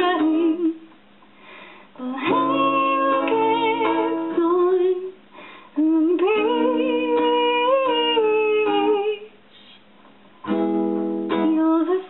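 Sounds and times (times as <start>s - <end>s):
woman singing: 0.0s - 0.9s, 2.0s - 9.4s, 11.2s - 12.0s
acoustic guitar: 0.0s - 12.0s.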